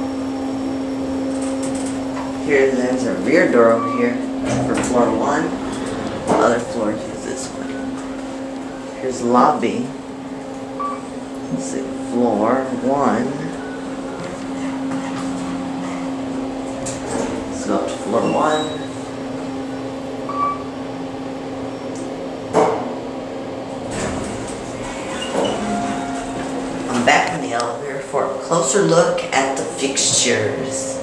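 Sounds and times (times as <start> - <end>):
elevator cab humming: 0.0 - 31.0.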